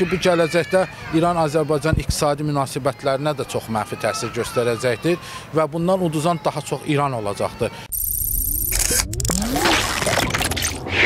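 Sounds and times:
sharp electronic clicks: 7.9 - 10.6.

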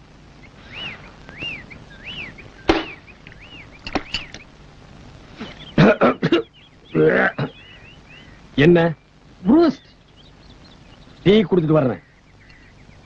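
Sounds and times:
bird whistling calls: 0.5 - 4.5, 5.4 - 5.8, 6.4 - 8.4
sharp crack: 0.7 - 5.6.

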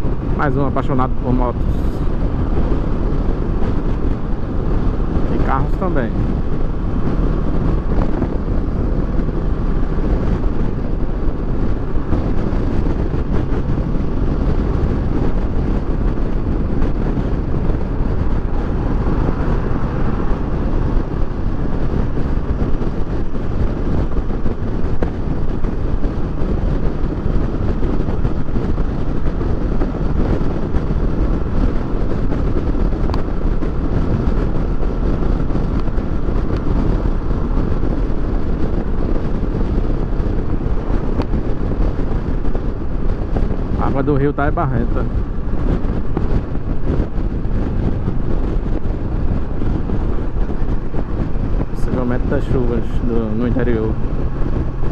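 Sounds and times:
motorcycle engine cruising: 0.0 - 54.9
wind rush on microphone: 0.0 - 54.9.

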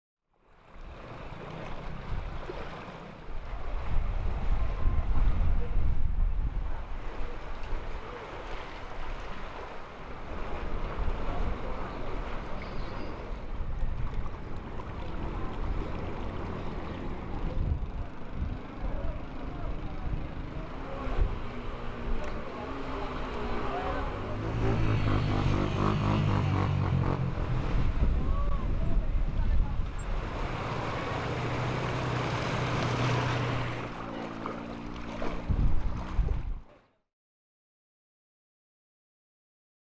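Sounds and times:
water noise: 0.3 - 36.9
wind buffeting microphone: 3.4 - 8.1, 10.4 - 19.1, 24.8 - 31.8, 35.2 - 36.7
people's voices: 14.8 - 26.8.

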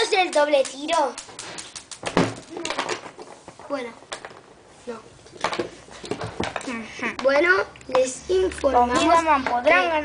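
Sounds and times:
children talking: 0.0 - 1.3, 6.6 - 10.0.

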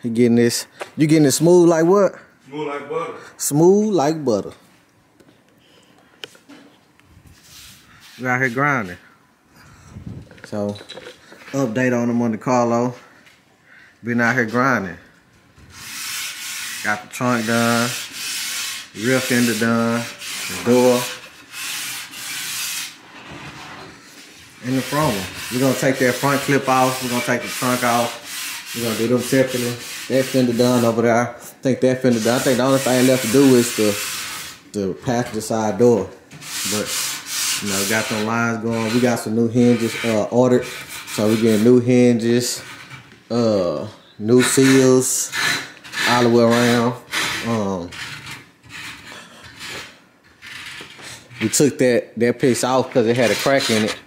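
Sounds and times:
sandpaper rubbing car panel: 15.8 - 23.0, 24.6 - 30.8.

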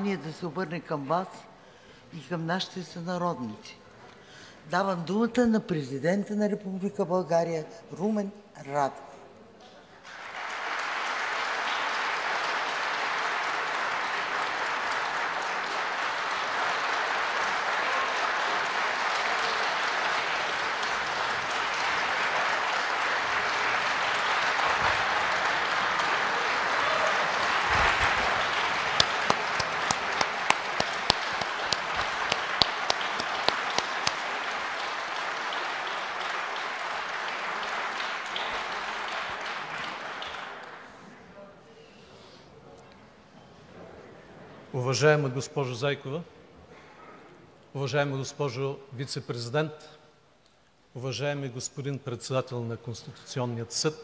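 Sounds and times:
applause in a chamber: 9.9 - 41.4.

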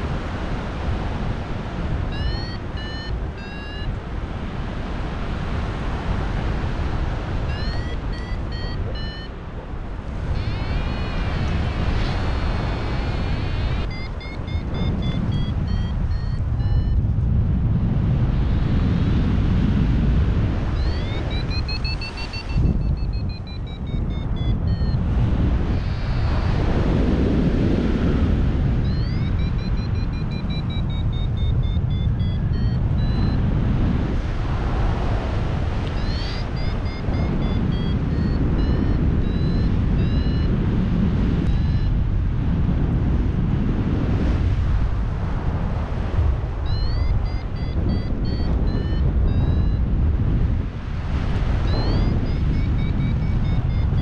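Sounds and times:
wind rushing over microphone: 0.0 - 54.0
variometer short high beeps: 2.0 - 4.0, 7.4 - 9.4, 10.2 - 17.0, 20.7 - 26.7, 28.8 - 33.5, 35.9 - 40.6, 41.5 - 42.0, 46.6 - 49.9, 51.6 - 54.0.

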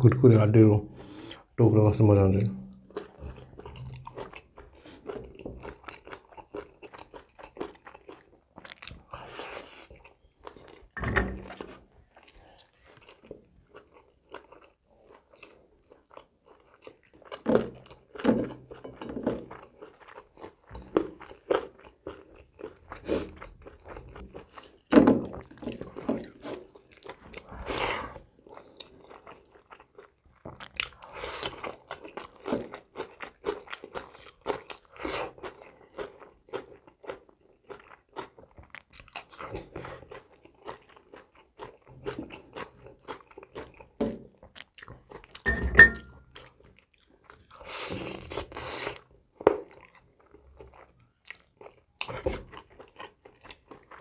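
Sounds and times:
chewing and crunching food: 2.6 - 54.0.

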